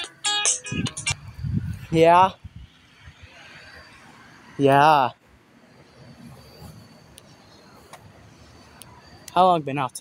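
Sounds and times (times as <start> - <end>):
distant car traffic rumble: 0.0 - 10.0.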